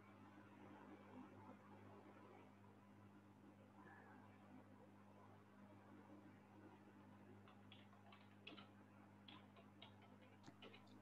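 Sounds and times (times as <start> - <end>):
faint small clicks: 7.4 - 11.0.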